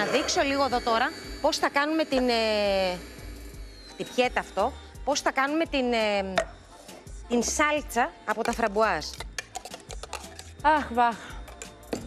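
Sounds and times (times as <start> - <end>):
background music: 0.0 - 12.0
metal spoon clinking on steel jug: 8.3 - 10.6.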